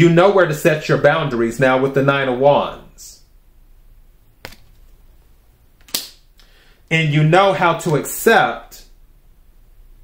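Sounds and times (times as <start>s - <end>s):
cards clicking on tabletop: 4.4s - 4.8s.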